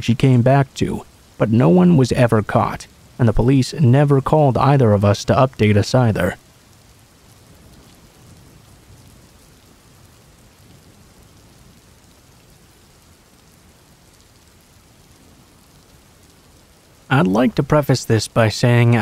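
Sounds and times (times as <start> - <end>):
steady rain falling: 0.0 - 19.0.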